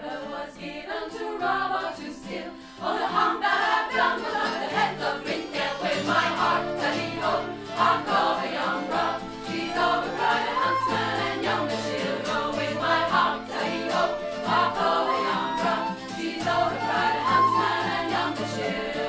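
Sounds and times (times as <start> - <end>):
acoustic guitar: 0.0 - 19.0
fiddle: 0.0 - 19.0
folk choir singing: 0.0 - 19.0.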